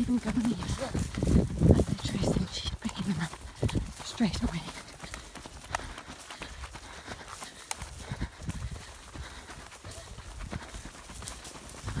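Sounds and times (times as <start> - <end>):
jogging footsteps on dirt: 0.0 - 12.0.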